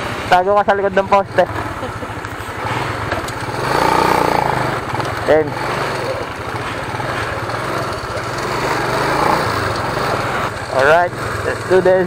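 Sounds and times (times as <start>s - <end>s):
road and air noise: 0.0s - 12.0s
small motorcycle engine running: 0.0s - 12.0s.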